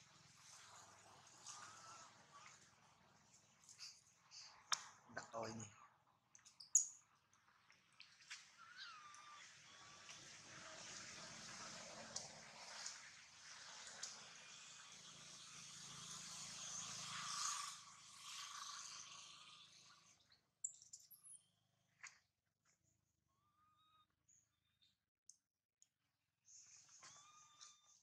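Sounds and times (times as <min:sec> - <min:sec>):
high animal squeaks: 0:08.6 - 0:10.0, 0:26.9 - 0:28.0.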